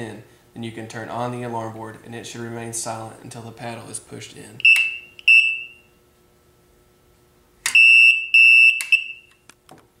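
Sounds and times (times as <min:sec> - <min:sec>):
high steady alarm beeps: 0:04.6 - 0:05.8, 0:07.7 - 0:09.3.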